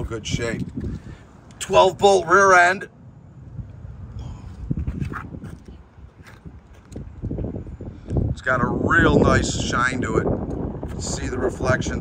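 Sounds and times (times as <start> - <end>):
wind rumble on microphone: 0.0 - 12.0
footsteps on asphalt: 4.5 - 8.3.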